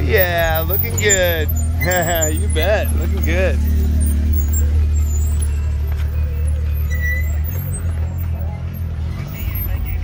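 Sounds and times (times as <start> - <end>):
vehicle engine low drone: 0.0 - 10.0.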